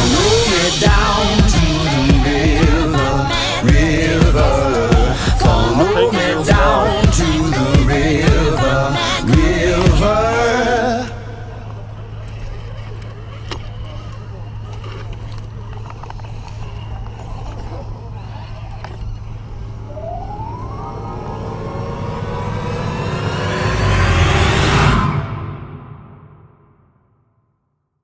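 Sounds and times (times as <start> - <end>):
upward sweeping whoosh: 0.0 - 8.4, 19.7 - 26.5
people chattering: 0.0 - 9.3
steady low hum: 0.0 - 25.5
short rising whine: 19.0 - 26.7.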